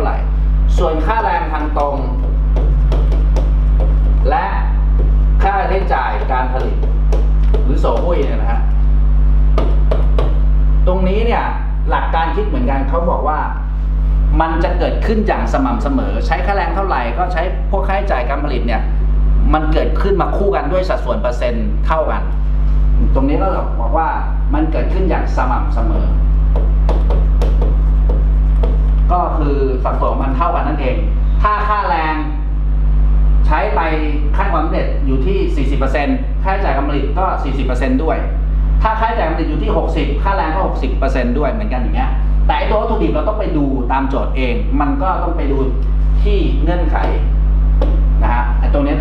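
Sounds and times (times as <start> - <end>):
low electrical hum: 0.0 - 49.0
stylus tapping touchscreen: 1.7 - 4.2, 4.9 - 8.3, 9.6 - 10.4, 26.5 - 29.1.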